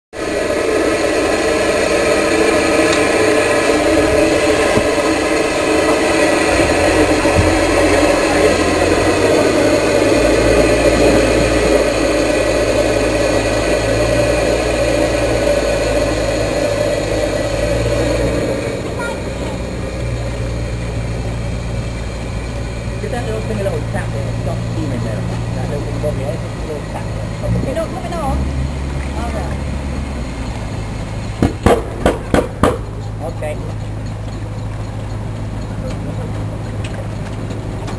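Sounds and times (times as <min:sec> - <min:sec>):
steam venting hiss: 0:00.2 - 0:33.2.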